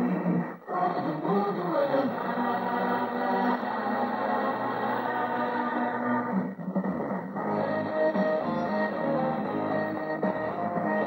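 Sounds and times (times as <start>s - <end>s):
muffled music from radio: 0.0s - 11.0s.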